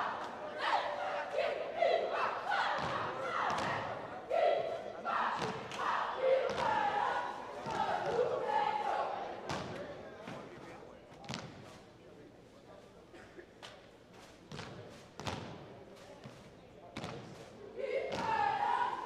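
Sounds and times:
cheerleaders shouting a chant: 0.0s - 9.6s, 17.7s - 19.0s
voices: 0.0s - 19.0s.

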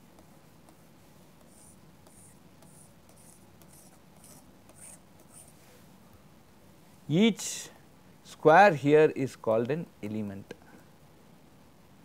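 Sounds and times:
low room hum: 0.0s - 12.0s
stylus scratching on pen tablet: 1.4s - 5.6s.

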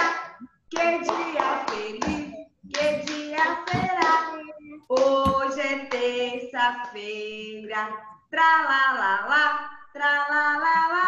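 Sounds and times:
hand claps: 0.0s - 6.2s
girl singing: 0.0s - 11.0s.

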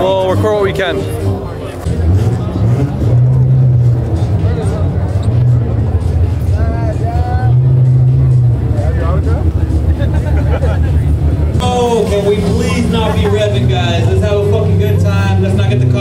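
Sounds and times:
car engines droning: 0.0s - 16.0s
crowd chatter: 0.0s - 16.0s
voices calling out: 6.5s - 16.0s.

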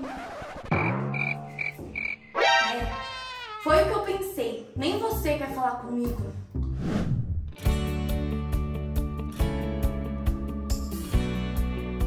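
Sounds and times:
background music: 0.7s - 6.8s, 7.5s - 12.0s.

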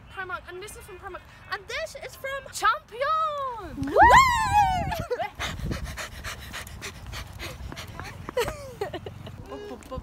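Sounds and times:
wind rumbling on microphone: 3.6s - 10.0s
wheezy breathless laughter: 5.0s - 9.9s.

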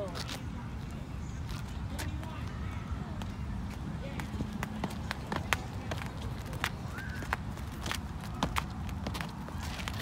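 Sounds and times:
jump ropes slapping ground: 3.1s - 10.0s.

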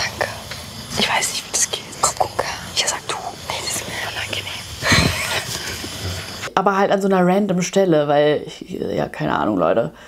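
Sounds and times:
person whispering: 0.0s - 4.8s.

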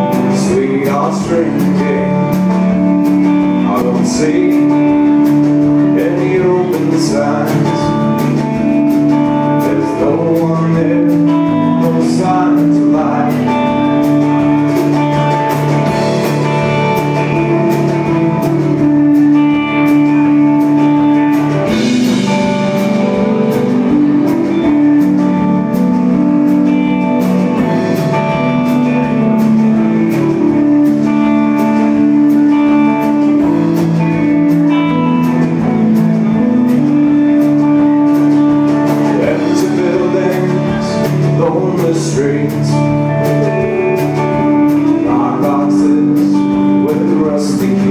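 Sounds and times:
drum kit steady beat: 0.0s - 47.9s
electric guitars: 0.0s - 47.9s.

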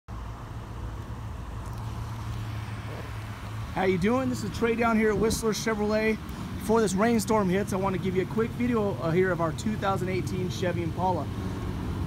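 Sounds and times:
outdoor background noise: 0.1s - 12.0s
vehicle engine humming: 0.1s - 12.0s.

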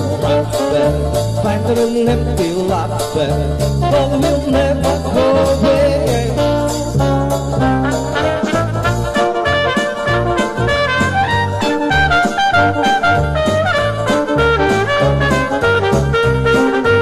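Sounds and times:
trumpet playing melody: 0.0s - 2.0s, 3.8s - 17.0s
swing jazz backing track: 0.0s - 17.0s.

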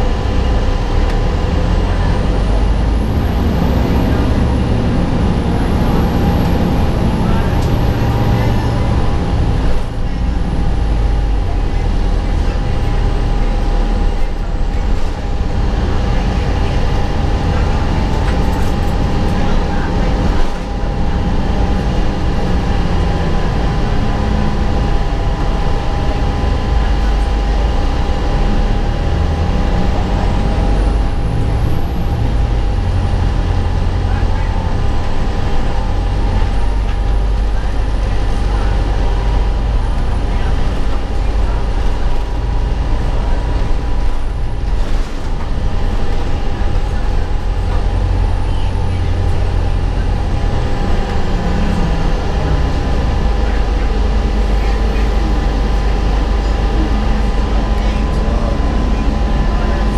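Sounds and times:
bus driving rumble: 0.0s - 59.9s
steady hum: 0.0s - 59.9s.

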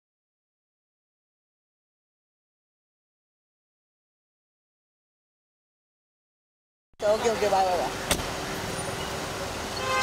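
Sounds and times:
street traffic noise: 7.0s - 10.0s.

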